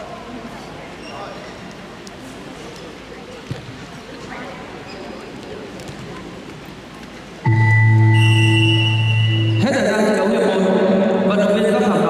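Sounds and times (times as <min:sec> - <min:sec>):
sports hall noise: 0:00.0 - 0:12.0.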